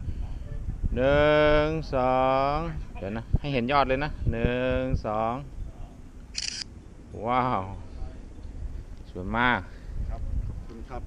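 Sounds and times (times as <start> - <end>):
camera shutter click: 6.4 - 6.7.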